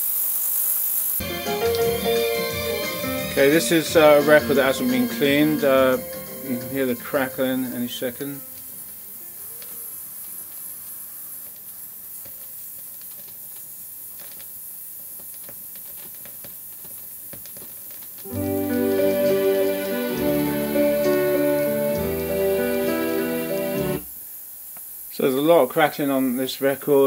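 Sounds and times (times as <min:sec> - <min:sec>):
vinyl surface crackle: 0:00.1 - 0:24.2
music from record: 0:01.2 - 0:10.0, 0:18.3 - 0:24.1.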